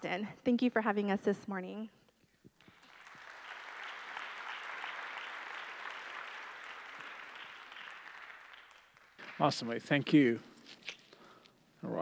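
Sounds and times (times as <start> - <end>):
congregation applauding: 2.6 - 10.3.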